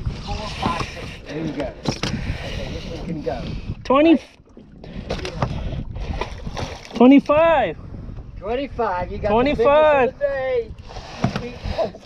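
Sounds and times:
wind and water rumble: 0.0 - 12.0.

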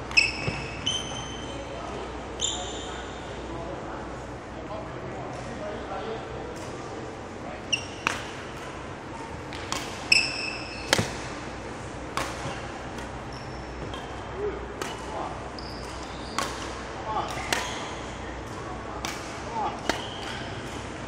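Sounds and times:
rackets hitting shuttlecock: 7.7 - 21.0.

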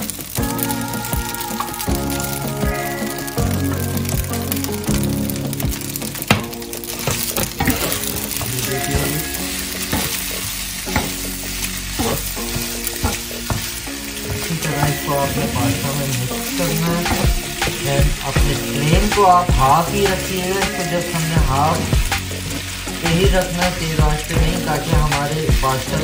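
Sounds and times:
food sizzling in a pan: 0.0 - 26.0
wooden spatula scraping a pan: 4.0 - 23.8.

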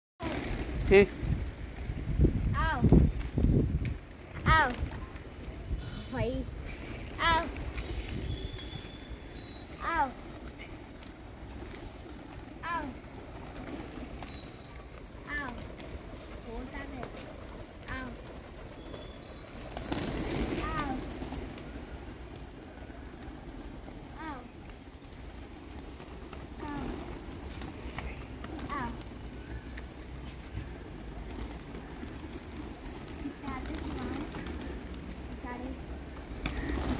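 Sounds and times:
wings fluttering: 0.2 - 36.9
pigeons cooing: 5.7 - 36.9.

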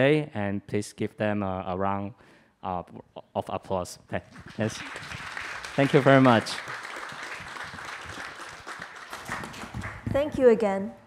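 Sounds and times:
small group applauding: 4.2 - 10.2.

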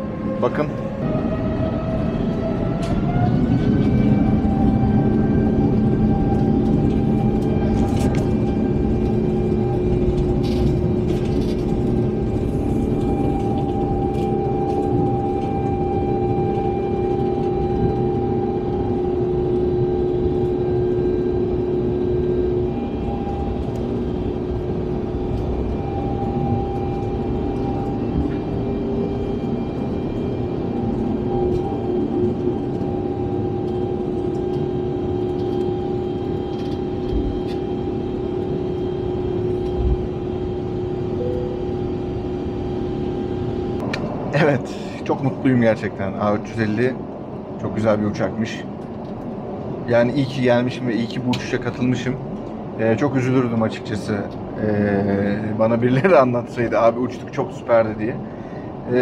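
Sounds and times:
jet engine drone in cabin: 0.0 - 59.0.

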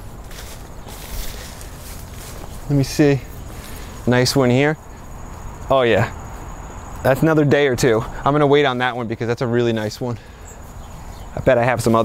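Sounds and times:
footsteps on wood-chip mulch: 0.0 - 12.0
leaves rustling: 0.0 - 12.0.

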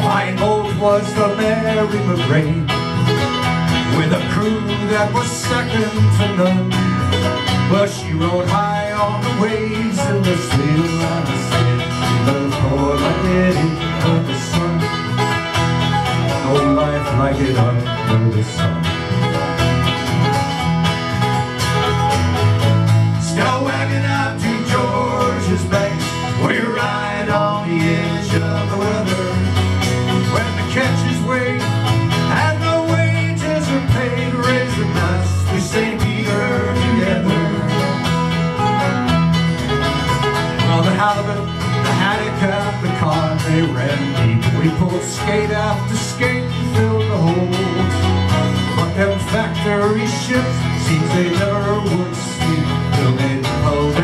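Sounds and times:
acoustic guitar: 0.0 - 54.0
banjo: 0.0 - 54.0
mandolin: 0.0 - 54.0.

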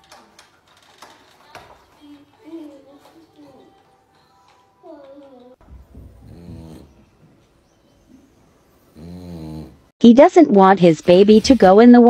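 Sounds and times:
dog snoring: 6.0 - 7.2, 8.8 - 9.9.

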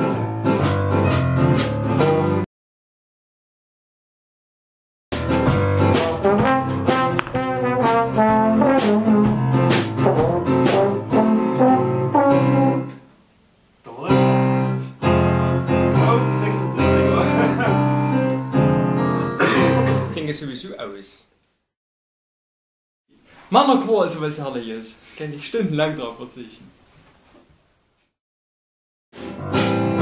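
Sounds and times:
jazz combo playing: 0.0 - 2.5, 5.1 - 13.1, 13.9 - 20.2, 29.2 - 30.0.

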